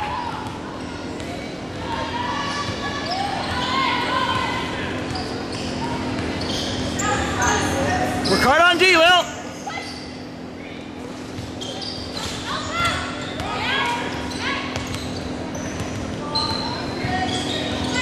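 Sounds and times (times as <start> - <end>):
sneakers squeaking: 0.0 - 18.0.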